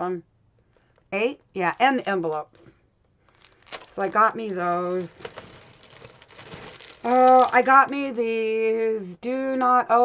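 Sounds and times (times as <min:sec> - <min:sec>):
plastic packaging crinkling: 0:01.6 - 0:02.6, 0:03.2 - 0:08.3.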